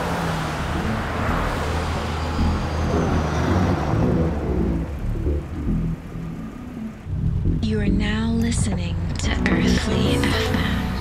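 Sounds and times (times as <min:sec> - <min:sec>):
motor vehicle noise: 0:00.0 - 0:11.0
low droning music: 0:00.5 - 0:11.0.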